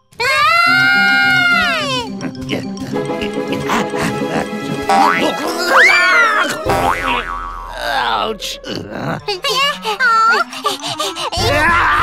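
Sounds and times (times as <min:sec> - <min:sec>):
cartoon background music: 0:00.0 - 0:12.0
person laughing: 0:01.8 - 0:07.0, 0:08.7 - 0:12.0
springy boing effects: 0:06.5 - 0:08.1.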